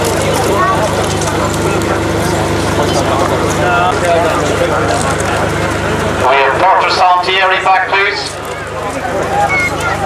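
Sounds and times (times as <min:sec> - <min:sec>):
low steady rumble: 0:00.0 - 0:10.0
people talking: 0:00.0 - 0:10.0.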